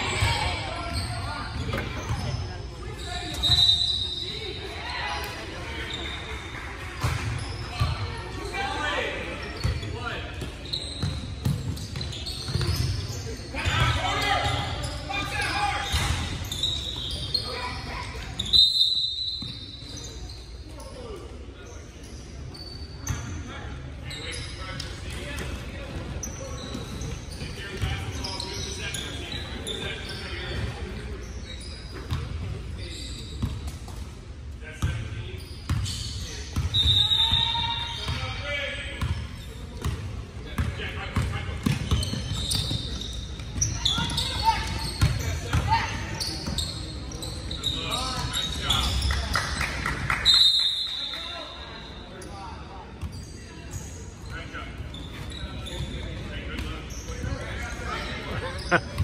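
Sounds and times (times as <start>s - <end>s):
voices echoing in a gym: 0.0s - 59.0s.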